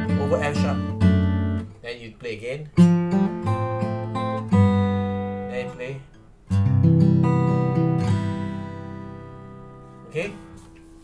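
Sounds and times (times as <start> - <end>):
acoustic guitar chord ringing: 0.0 - 1.8, 2.8 - 11.0.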